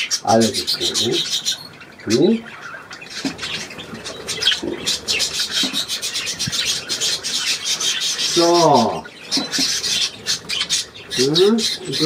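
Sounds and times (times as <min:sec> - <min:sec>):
budgerigars chattering: 0:00.0 - 0:12.0.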